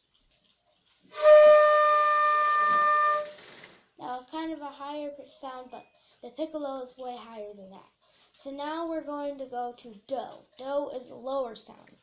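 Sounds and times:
flute playing a held note: 1.2s - 3.4s.

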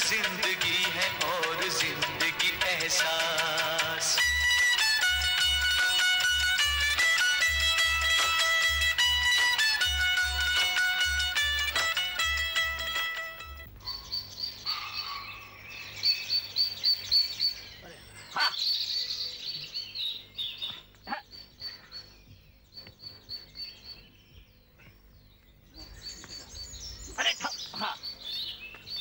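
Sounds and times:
plucked-string music: 0.0s - 13.7s
small birds chirping: 13.6s - 29.0s.

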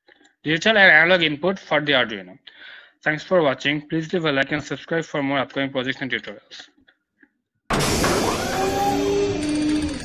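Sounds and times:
sound effect hit: 7.7s - 10.0s.

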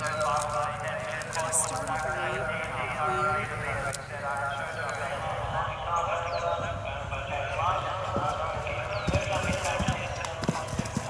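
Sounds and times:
horse hoofbeats galloping: 0.0s - 5.1s, 7.4s - 11.0s
onlookers talking: 0.0s - 10.8s.

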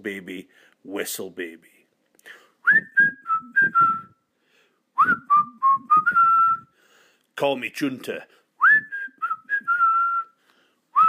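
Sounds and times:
person whistling a tune: 2.6s - 4.2s, 5.0s - 6.8s, 8.6s - 10.4s.

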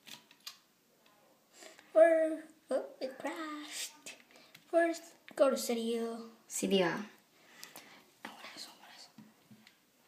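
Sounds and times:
person whispering: 8.2s - 9.2s.

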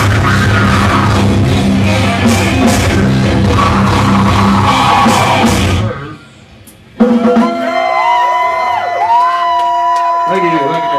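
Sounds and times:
live metal band playing: 0.0s - 6.2s.

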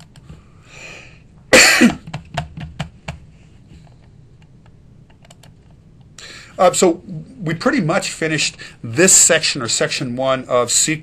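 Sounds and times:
man coughing: 1.5s - 2.1s
computer clicks: 4.0s - 6.1s.

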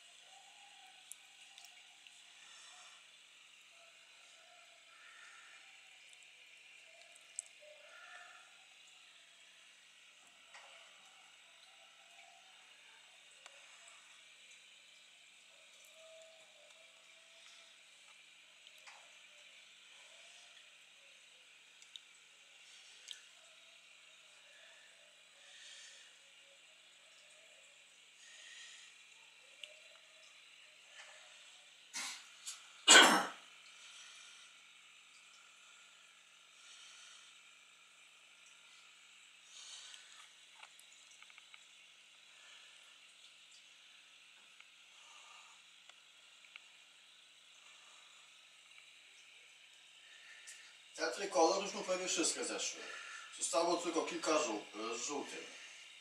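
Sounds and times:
steady hiss: 0.0s - 56.0s
small sharp ticks: 1.0s - 2.2s, 4.9s - 9.0s, 21.7s - 24.0s, 28.4s - 30.4s, 39.5s - 42.2s, 45.8s - 47.7s
aquarium air bubbling: 27.7s - 41.1s.

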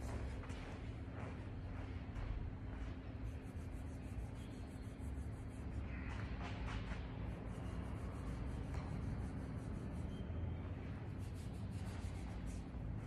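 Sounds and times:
low hum: 0.0s - 13.0s
faint rubbing: 7.5s - 13.0s.

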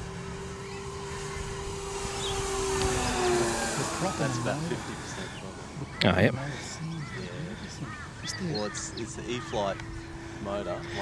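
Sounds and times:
model plane propeller drone: 0.0s - 11.0s.

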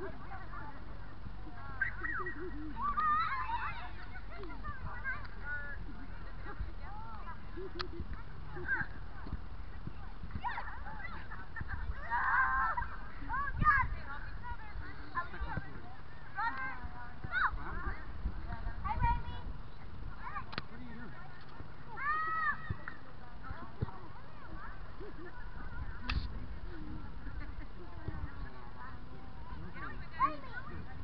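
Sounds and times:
distant children shouting: 10.4s - 13.6s.

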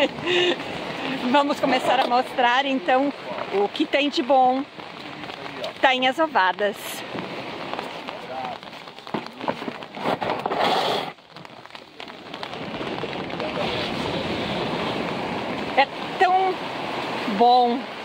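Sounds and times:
people talking: 0.0s - 7.0s, 8.0s - 9.7s, 13.2s - 14.6s, 15.8s - 16.6s, 17.2s - 17.9s
steady rain hiss: 0.0s - 18.0s.

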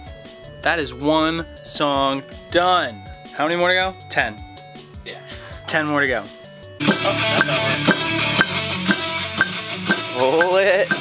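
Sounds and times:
rock music with guitar and drums: 0.0s - 0.7s, 1.5s - 11.0s.

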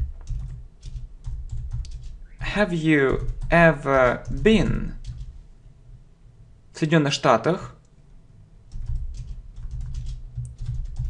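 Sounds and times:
keyboard typing clicks: 0.0s - 2.2s, 8.7s - 11.0s.

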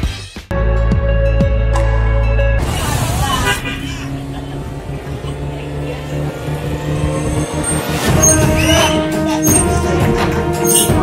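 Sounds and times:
background music: 0.0s - 11.0s
street traffic hum: 2.2s - 11.0s
low engine drone: 2.4s - 10.6s.

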